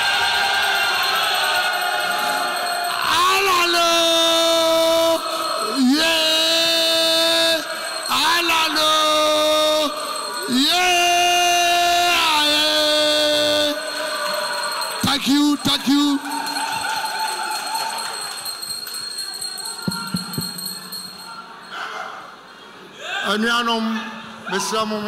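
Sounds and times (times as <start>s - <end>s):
crowd noise in large hall: 0.0s - 25.0s.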